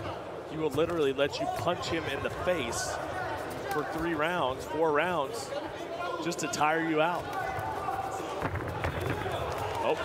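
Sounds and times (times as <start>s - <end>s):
crowd din: 0.0s - 10.0s.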